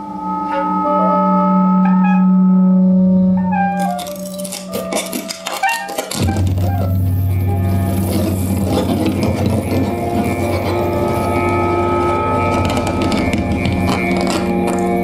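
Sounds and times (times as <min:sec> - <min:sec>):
held tones: 0:00.0 - 0:15.0
low drone: 0:00.0 - 0:15.0.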